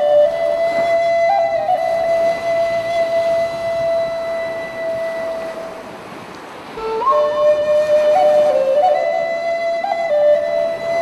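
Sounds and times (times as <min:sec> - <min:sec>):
flute music: 0:00.0 - 0:06.0, 0:06.6 - 0:11.0.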